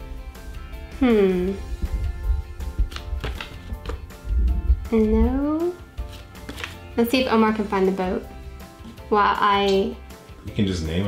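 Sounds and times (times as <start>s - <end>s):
paper rustling and tapping: 2.8s - 4.1s, 6.1s - 6.8s.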